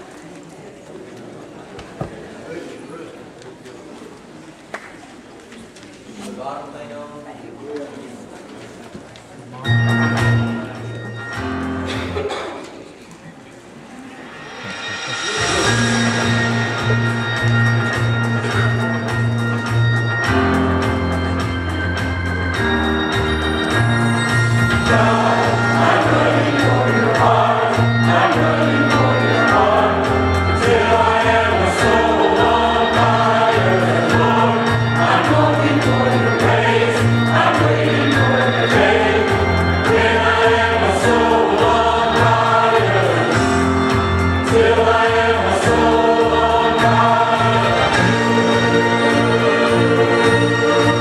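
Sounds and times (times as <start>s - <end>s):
instrumental accompaniment: 14.0s - 51.0s
choir singing gospel song: 24.5s - 51.0s.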